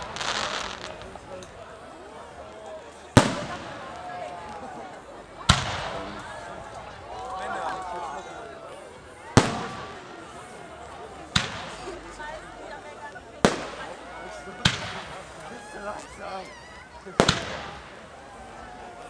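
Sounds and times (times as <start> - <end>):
firework shells bursting: 0.0 - 1.6
spectators chattering: 0.0 - 19.0.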